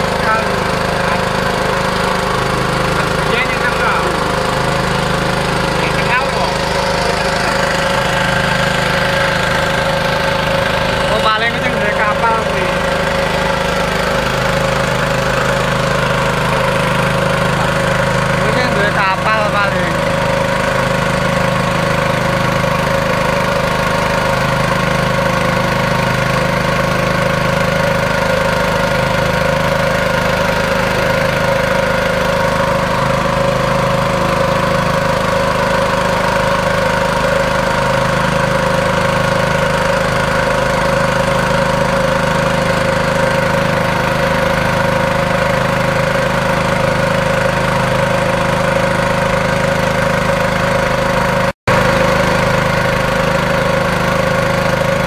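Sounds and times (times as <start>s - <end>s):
boat engine running: 0.0s - 55.0s
water rushing past hull: 0.0s - 55.0s.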